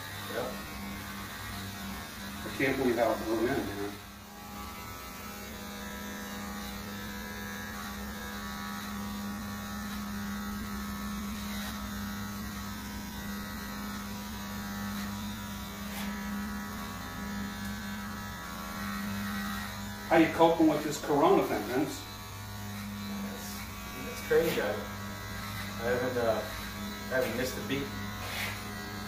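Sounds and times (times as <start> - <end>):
electric hair clippers buzzing: 0.0 - 29.0.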